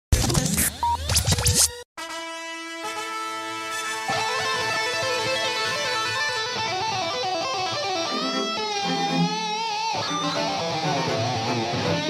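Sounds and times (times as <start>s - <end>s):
turntable scratching: 0.1s - 1.8s.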